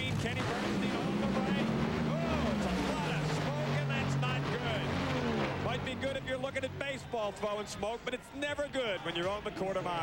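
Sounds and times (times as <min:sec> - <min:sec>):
dragster engines droning: 0:00.0 - 0:08.0.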